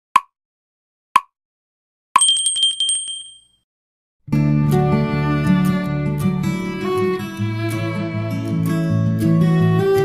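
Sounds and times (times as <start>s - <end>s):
bell ringing in fast trill: 2.2s - 3.6s.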